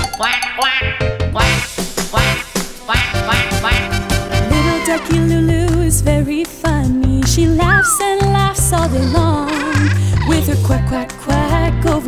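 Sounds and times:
upbeat children's song music: 0:00.0 - 0:12.0
cartoon duck quacks: 0:01.4 - 0:04.0.

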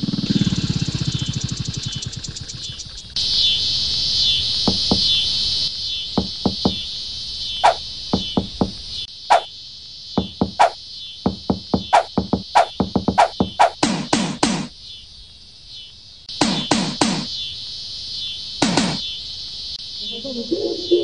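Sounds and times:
cartoon motorcycle engine chugging: 0:00.0 - 0:03.1, 0:10.2 - 0:14.7
insects buzzing: 0:00.0 - 0:21.0
hollow knocks on watermelons: 0:04.7 - 0:05.2, 0:06.2 - 0:06.8, 0:07.6 - 0:09.5, 0:10.2 - 0:14.7, 0:16.4 - 0:17.3, 0:18.6 - 0:19.0.

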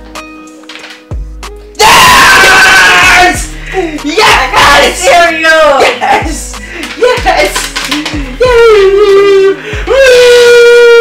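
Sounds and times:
background music with held tones: 0:00.0 - 0:11.0
very loud scream: 0:01.8 - 0:03.5, 0:09.9 - 0:11.0.

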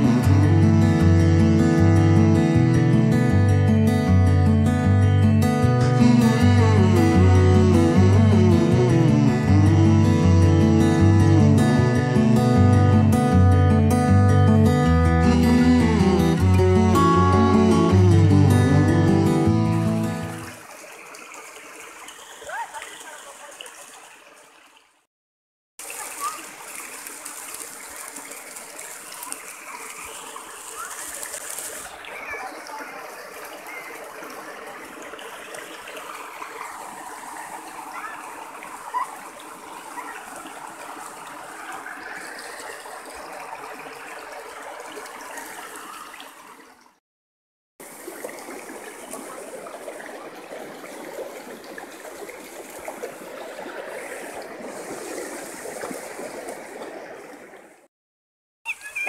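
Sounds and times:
river water gurgling over rocks: 0:25.8 - 0:46.8, 0:47.8 - 0:57.6.

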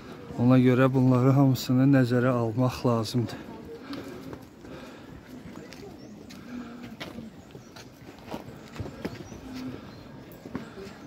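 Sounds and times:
faint chatter: 0:00.0 - 0:11.0
footsteps on stone steps: 0:00.0 - 0:11.0.

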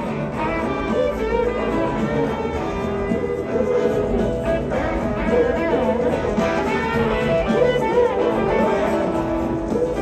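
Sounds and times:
electric guitar solo: 0:00.0 - 0:10.0
rock band playing live: 0:00.0 - 0:10.0.

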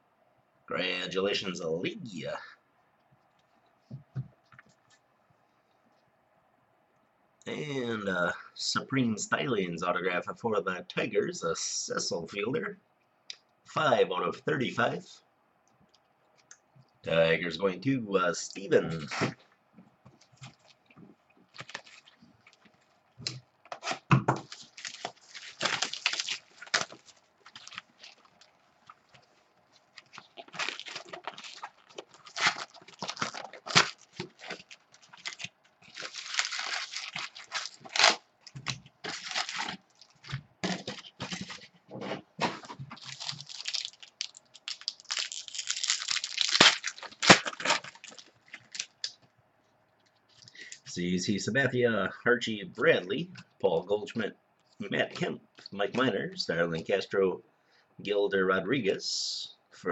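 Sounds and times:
foil packs ripping open: 0:21.5 - 0:22.2, 0:23.7 - 0:29.1, 0:29.9 - 0:41.6, 0:43.0 - 0:49.1
plastic wrap crinkling and tearing: 0:21.5 - 0:41.7, 0:42.4 - 0:49.2.

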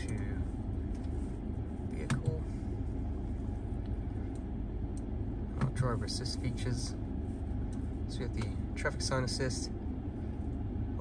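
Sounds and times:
car cabin low rumble: 0:00.0 - 0:11.0
climate control running: 0:00.0 - 0:11.0.

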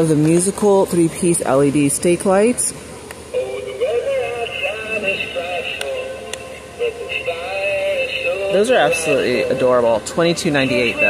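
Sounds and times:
electronic voice singing a melody: 0:03.3 - 0:11.0.

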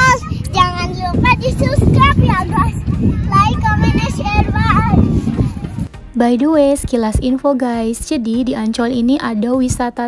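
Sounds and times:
wind rumble on microphone: 0:00.0 - 0:06.0.

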